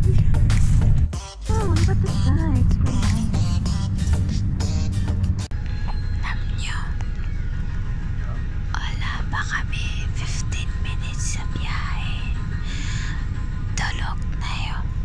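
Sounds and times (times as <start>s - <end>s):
background music: 0.0s - 15.0s
bus rumble inside cabin: 0.0s - 15.0s.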